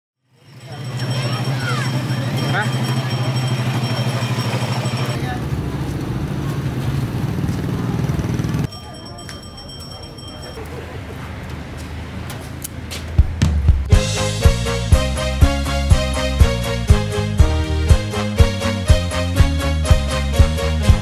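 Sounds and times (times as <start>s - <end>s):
vehicle engine running: 0.4s - 8.7s
people's voices: 0.4s - 13.2s.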